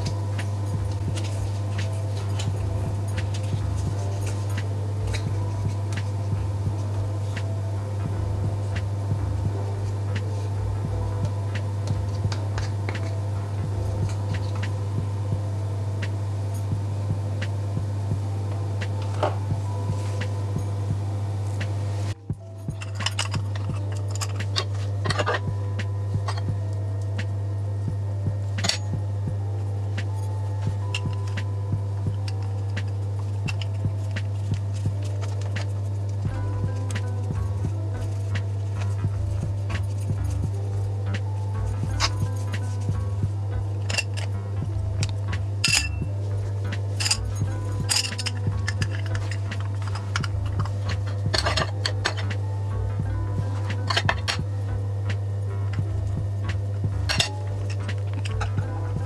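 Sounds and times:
metal utensils clinking: 0:00.0 - 0:07.6, 0:22.4 - 0:26.5, 0:28.5 - 0:29.0, 0:32.2 - 0:36.2, 0:43.7 - 0:44.3, 0:45.0 - 0:52.4, 0:53.5 - 0:54.4, 0:57.1 - 0:58.6
background music: 0:00.0 - 0:59.0.

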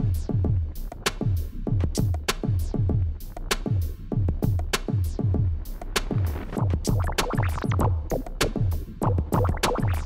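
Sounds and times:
electronic music with drum-machine beat: 0:00.0 - 0:10.0.

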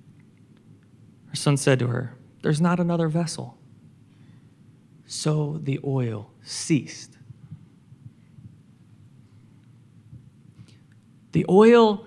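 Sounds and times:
faint low thumps: 0:07.2 - 0:10.7.

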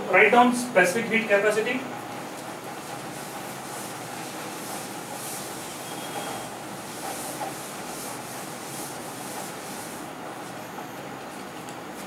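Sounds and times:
room hiss: 0:00.0 - 0:11.0
duster wiping a chalkboard: 0:02.8 - 0:10.6.

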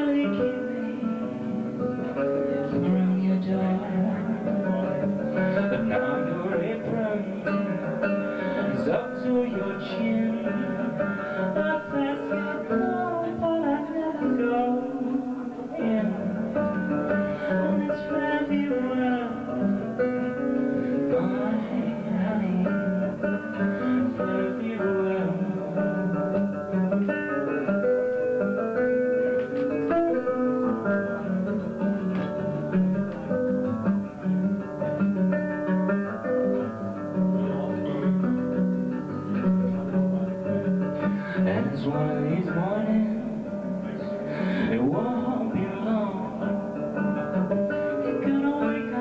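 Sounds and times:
person singing: 0:00.0 - 0:35.0, 0:36.0 - 0:49.0
acoustic guitar folk ballad: 0:00.0 - 0:49.0.

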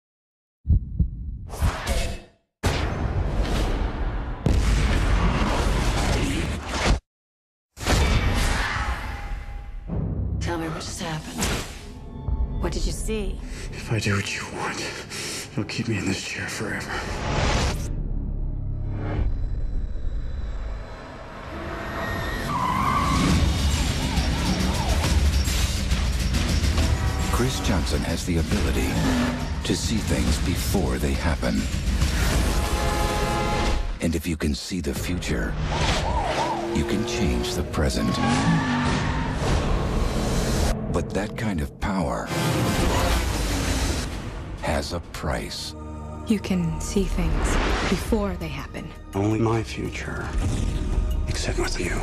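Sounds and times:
deep thumps: 0:00.7 - 0:01.6
car tyres squealing: 0:21.8 - 0:27.5, 0:28.7 - 0:29.7, 0:35.7 - 0:39.9.

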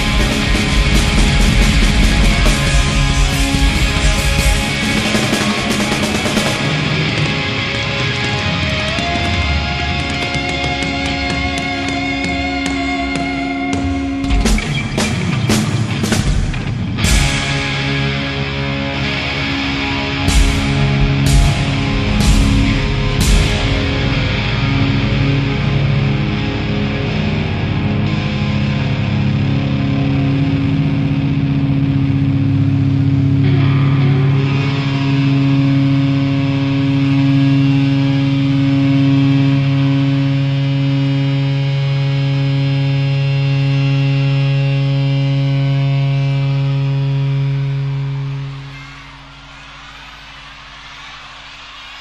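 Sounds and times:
rock band sustained chord: 0:00.0 - 0:51.1.

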